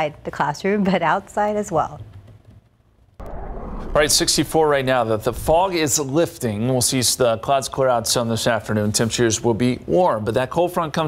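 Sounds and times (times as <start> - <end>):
low rumbling noise: 3.2 - 6.5.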